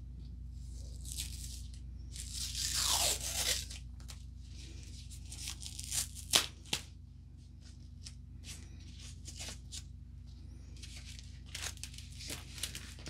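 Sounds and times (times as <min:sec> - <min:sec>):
tape being peeled off: 0:01.0 - 0:04.2, 0:05.3 - 0:06.8.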